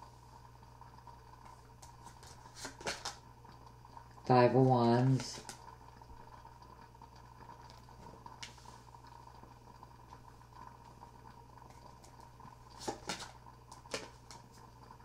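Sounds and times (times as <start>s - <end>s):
faint steady hum: 0.0s - 15.0s
cards clicking on table: 1.8s - 3.2s, 12.8s - 14.4s.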